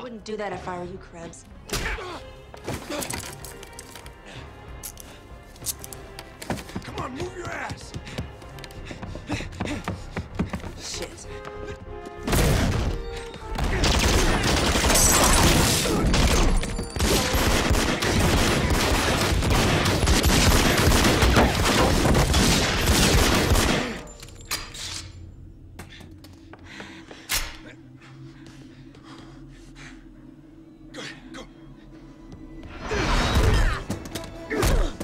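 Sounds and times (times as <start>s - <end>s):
rapid gunfire volley: 17.0s - 24.0s.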